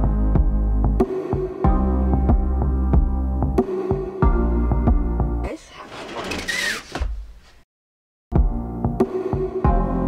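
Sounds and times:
sliding scrape with squeak: 5.7s - 7.6s.

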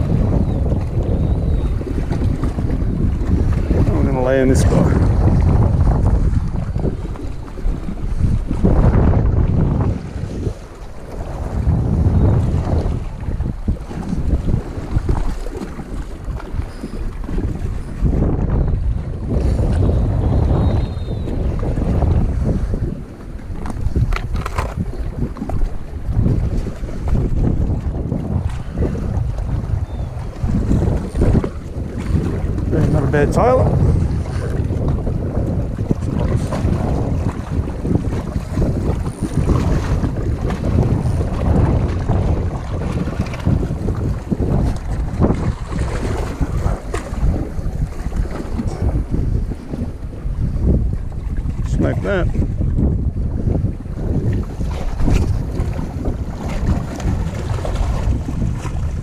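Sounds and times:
wind buffeting microphone: 0.0s - 59.0s
small waves washing against rocks: 30.3s - 49.8s, 54.0s - 59.0s.

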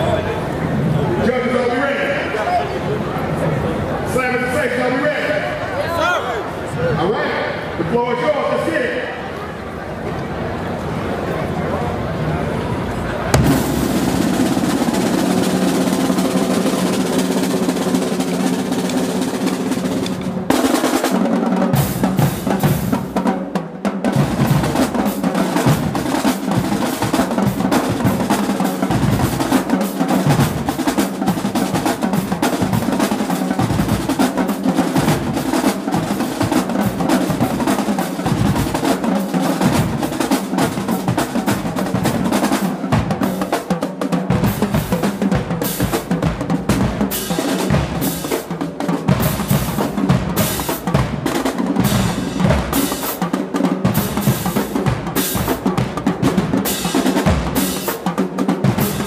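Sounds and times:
marching drumline: 13.3s - 59.0s.

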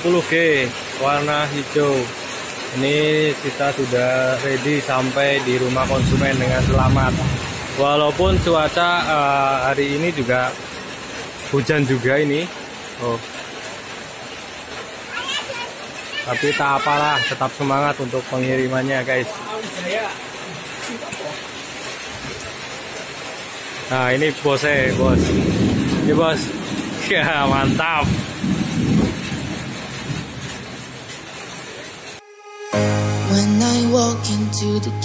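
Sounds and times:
rain falling: 0.0s - 32.2s.

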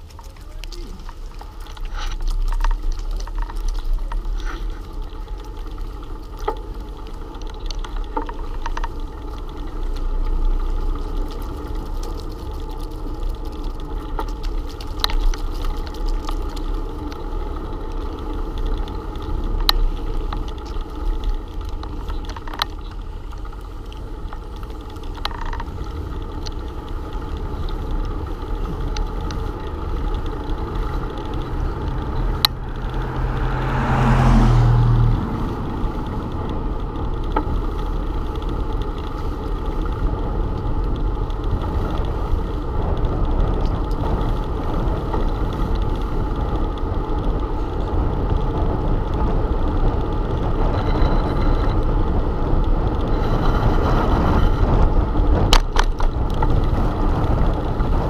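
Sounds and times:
bicycle tyre noise on asphalt: 0.0s - 58.0s
low hum: 0.0s - 58.0s
wind on microphone: 27.1s - 58.0s.

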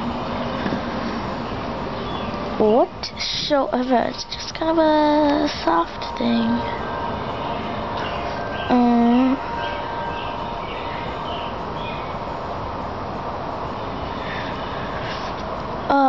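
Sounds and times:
steady hissing: 0.0s - 16.0s.

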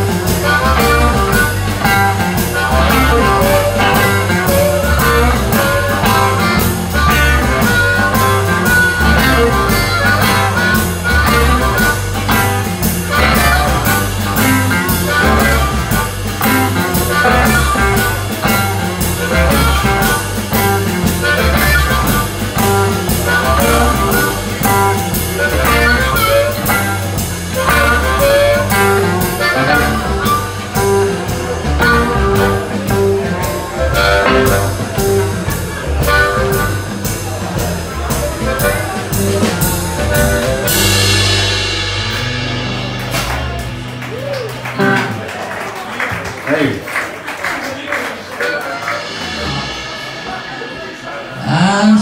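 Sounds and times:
harmonica: 0.0s - 41.3s
blues band playing: 0.0s - 52.0s
cymbal crash: 40.7s - 44.3s, 49.0s - 52.0s.

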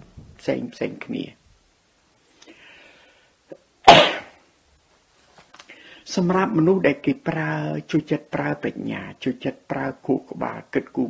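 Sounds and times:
faint intake of breath: 2.3s - 3.5s, 5.6s - 6.1s.

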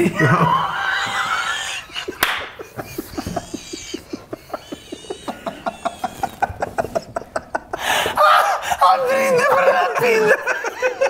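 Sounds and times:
man laughing hard: 0.0s - 11.0s.

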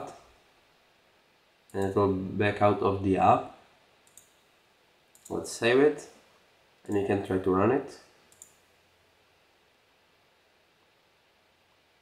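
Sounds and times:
computer mouse clicks: 4.0s - 4.4s, 5.1s - 5.4s, 8.3s - 8.6s.

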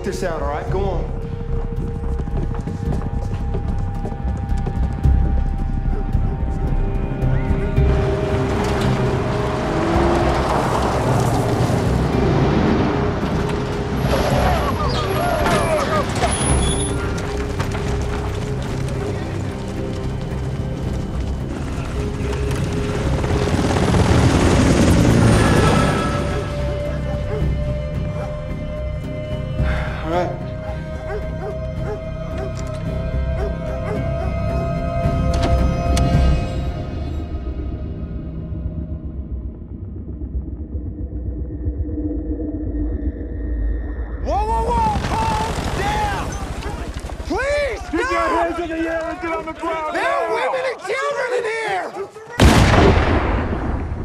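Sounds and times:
tense music score: 0.0s - 54.0s
helicopter rotors chopping: 13.0s - 27.2s.

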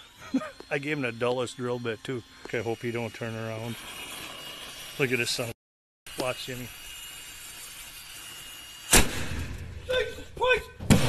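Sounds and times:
drill running: 0.0s - 9.0s
loud bang: 8.9s - 9.9s, 10.8s - 11.0s
man yelling: 9.9s - 10.8s.

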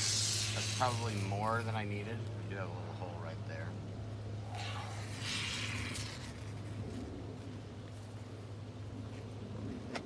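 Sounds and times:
aerosol foam can hissing: 0.0s - 1.6s, 4.6s - 6.4s.

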